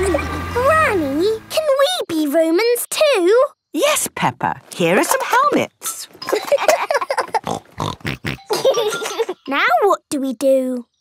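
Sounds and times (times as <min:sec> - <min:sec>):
cartoon pigs laughing and snorting: 0:05.9 - 0:09.5.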